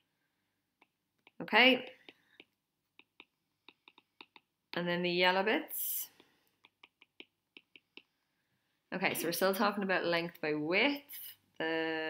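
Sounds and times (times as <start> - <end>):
stylus tapping tablet screen: 0.0 - 5.2, 5.8 - 8.3.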